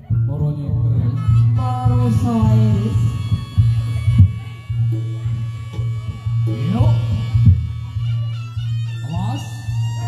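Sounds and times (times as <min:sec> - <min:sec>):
steady low drone: 0:00.0 - 0:10.0
melody sliding downward: 0:01.0 - 0:10.0
sharp drum strokes: 0:01.2 - 0:10.0.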